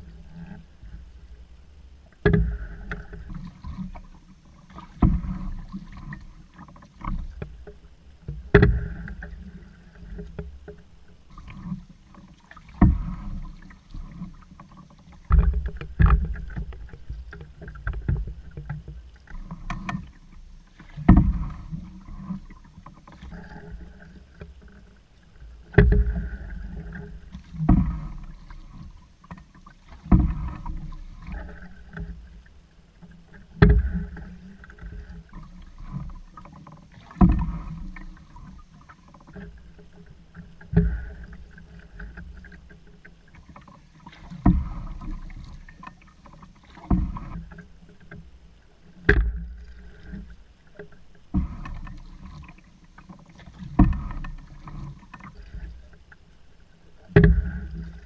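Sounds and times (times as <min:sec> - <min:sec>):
low rumble of water: 0:00.0 - 0:58.0
paddle splashing water: 0:00.0 - 0:58.0
water gurgling along hull: 0:00.0 - 0:58.0.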